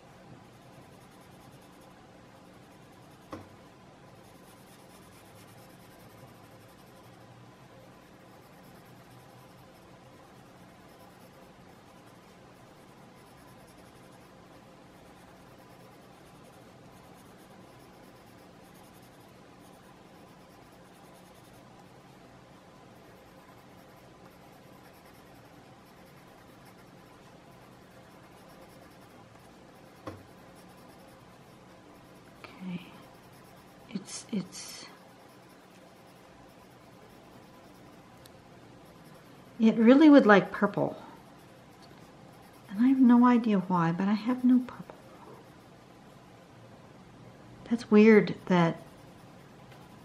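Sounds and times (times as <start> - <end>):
pencil shading on paper: 0.0 - 22.2, 22.8 - 45.8, 47.7 - 50.0.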